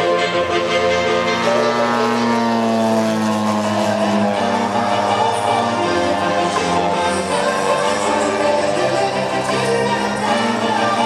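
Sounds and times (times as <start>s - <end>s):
background music: 0.0s - 11.0s
model plane petrol engine: 0.0s - 11.0s.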